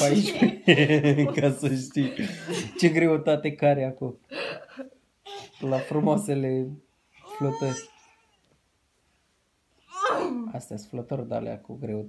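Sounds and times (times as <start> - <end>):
person speaking: 0.0 - 4.2, 5.6 - 8.0.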